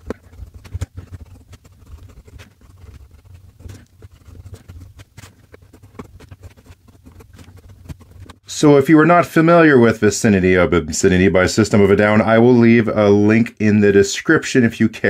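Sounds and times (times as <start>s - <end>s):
fountain pen scratching on paper: 0.0s - 8.5s.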